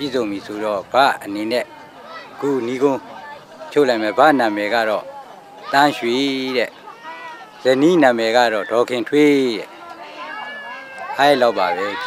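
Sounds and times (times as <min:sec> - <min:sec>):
man speaking outdoors: 0:00.0 - 0:09.8, 0:11.1 - 0:12.0.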